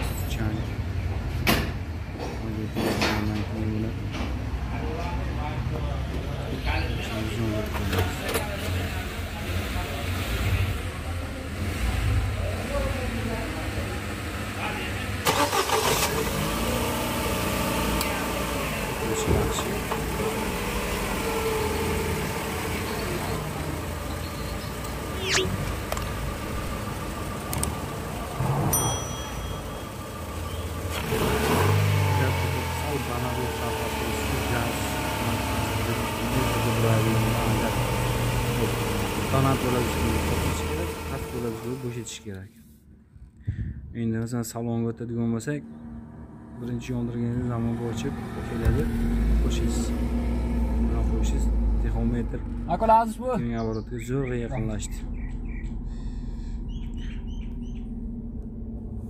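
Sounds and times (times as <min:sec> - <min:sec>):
car engine running: 0:06.8 - 0:42.2, 0:46.6 - 0:59.0.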